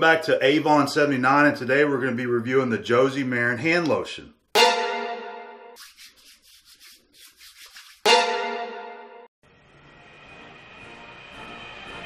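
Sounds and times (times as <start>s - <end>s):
hands rubbing lotion: 5.8s - 8.2s.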